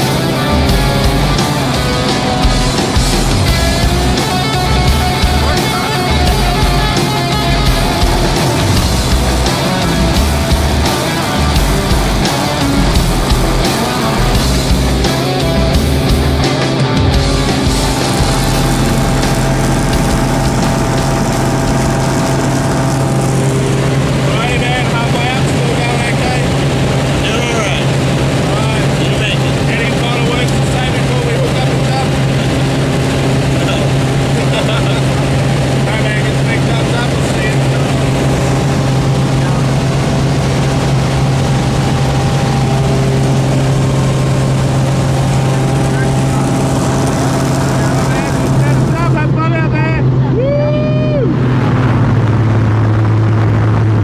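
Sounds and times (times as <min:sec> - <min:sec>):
small plane engine drone in cabin: 0:00.0 - 0:54.0.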